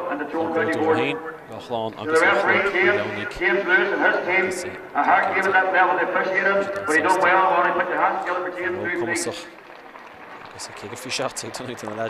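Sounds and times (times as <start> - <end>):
man speaking over public address: 0.0 - 9.6, 10.4 - 12.0.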